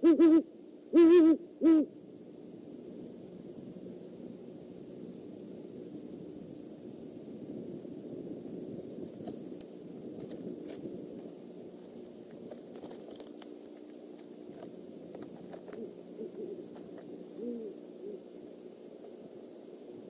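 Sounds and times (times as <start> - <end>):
owl hooting: 0.0 - 2.0, 14.4 - 19.3
steady background hum: 0.0 - 20.0.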